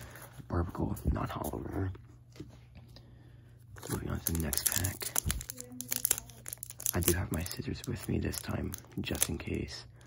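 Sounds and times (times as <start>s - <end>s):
foil wrapper crinkling: 3.8s - 9.6s.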